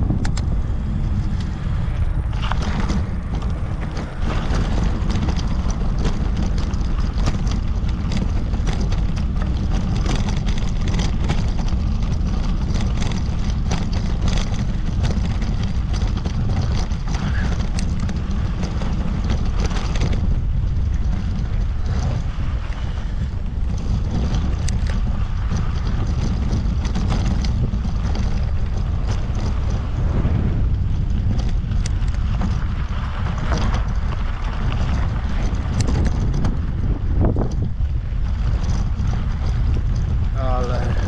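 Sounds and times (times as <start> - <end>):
bicycle knocks and rattles: 0.0 - 41.0
wind rumbling on microphone: 0.0 - 41.0.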